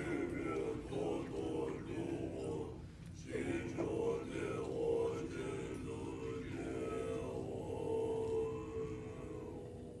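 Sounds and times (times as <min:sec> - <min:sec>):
monks chanting deep note: 0:00.0 - 0:10.0.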